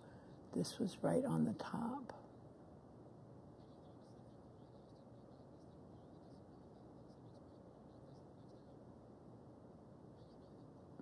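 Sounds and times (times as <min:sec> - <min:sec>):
steady room hiss: 0:00.0 - 0:11.0.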